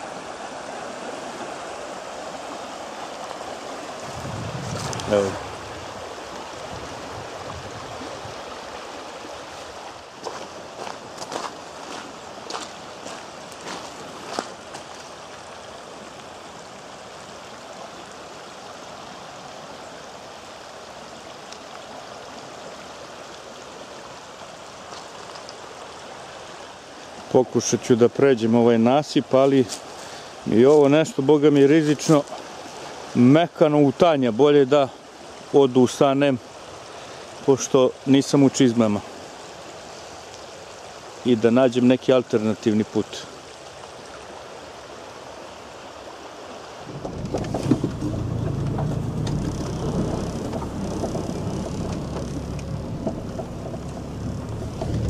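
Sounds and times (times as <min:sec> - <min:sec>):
river water rushing: 0:00.0 - 0:55.0
footsteps on gravel: 0:10.2 - 0:15.1.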